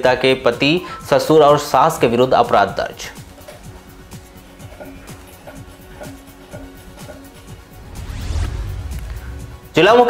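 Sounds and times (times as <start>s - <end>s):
sudden hit with deep rumble: 7.8s - 9.8s.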